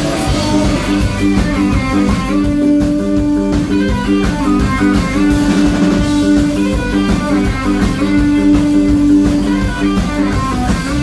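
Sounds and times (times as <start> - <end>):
drum kit beat: 0.0 - 11.0
electric bass: 0.0 - 11.0
electric guitar: 0.0 - 11.0.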